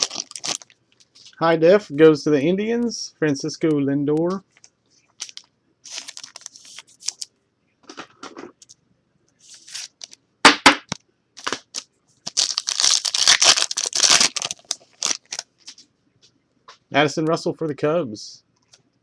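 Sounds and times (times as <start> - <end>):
card pack wrapper tearing: 0.0 - 0.7, 5.2 - 7.3, 9.4 - 10.2, 11.4 - 15.5
card rustling: 4.5 - 7.3, 9.4 - 10.2, 11.4 - 15.8.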